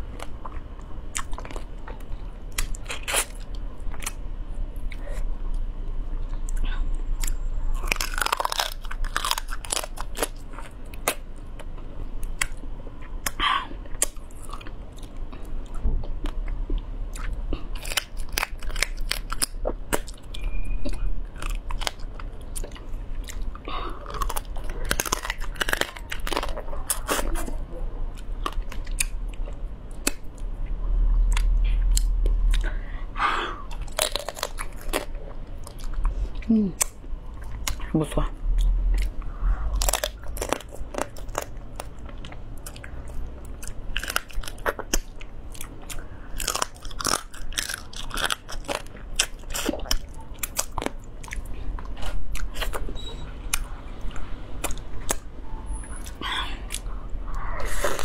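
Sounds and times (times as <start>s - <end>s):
chewing and wet mouth sounds: 0.0s - 32.9s, 33.7s - 58.0s
low steady hum: 0.0s - 58.0s
crunching through shells: 7.8s - 11.2s.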